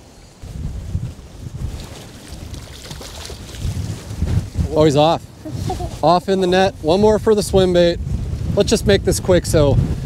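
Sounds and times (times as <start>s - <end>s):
wind buffeting microphone: 0.0s - 10.0s
choppy water washing: 0.4s - 8.2s.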